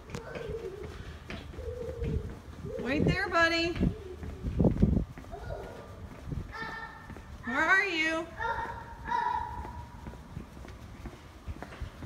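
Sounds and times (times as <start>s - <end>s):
footsteps on concrete: 0.0s - 12.0s
toddler calling: 0.2s - 3.1s, 5.2s - 7.2s, 8.3s - 9.8s.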